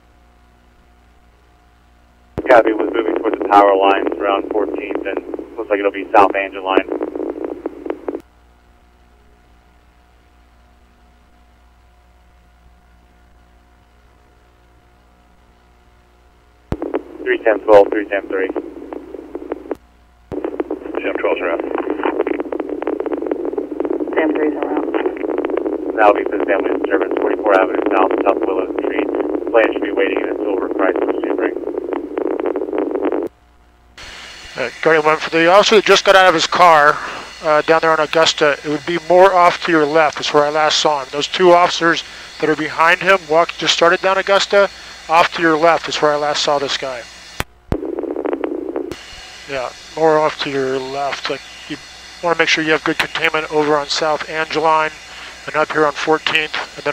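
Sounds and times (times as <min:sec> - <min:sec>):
radio line hiss and hum: 0:00.0 - 0:56.9
police radio voice: 0:02.4 - 0:06.9, 0:17.3 - 0:18.6, 0:20.8 - 0:22.4, 0:24.1 - 0:25.3, 0:25.9 - 0:31.6, 0:34.6 - 0:47.0, 0:49.5 - 0:51.4, 0:52.2 - 0:56.9
thin steady tone: 0:34.0 - 0:47.4.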